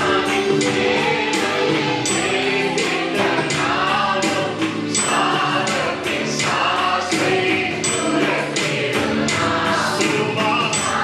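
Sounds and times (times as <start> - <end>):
instrumental backing with beat: 0.0 - 11.0
men singing a worship song: 0.0 - 11.0.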